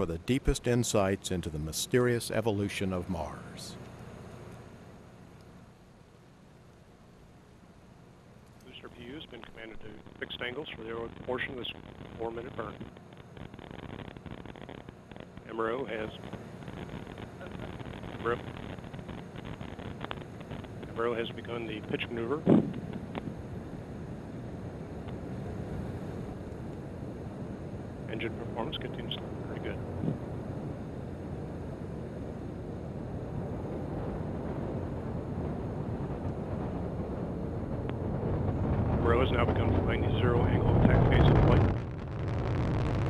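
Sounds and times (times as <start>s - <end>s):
person speaking commentary: 0.0s - 3.8s, 20.9s - 22.5s
distant rocket engine roar: 0.0s - 43.0s.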